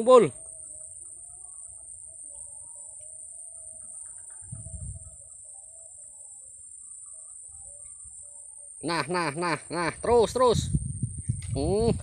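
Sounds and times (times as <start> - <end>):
faint wavering calls: 0.0 - 10.6
high-pitched insect chirring: 0.0 - 12.0.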